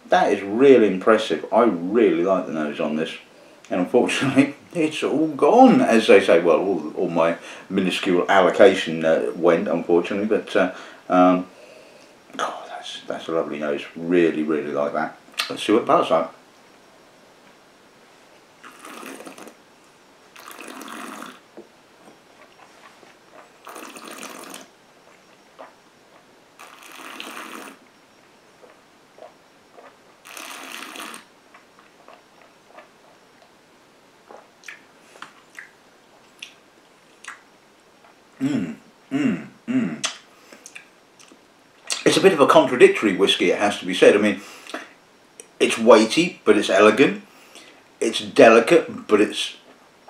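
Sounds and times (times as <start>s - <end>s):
mouth sounds: 38.4s - 42.4s.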